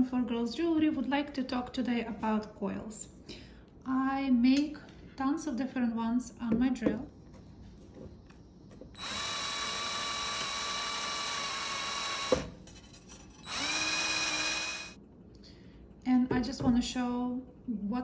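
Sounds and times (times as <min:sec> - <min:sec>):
cordless drill motor whining: 0:09.0 - 0:12.5, 0:13.4 - 0:15.0.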